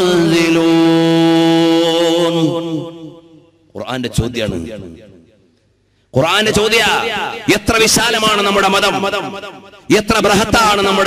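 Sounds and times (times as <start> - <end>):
man chanting melodically: 0.0 - 5.1, 6.2 - 11.0.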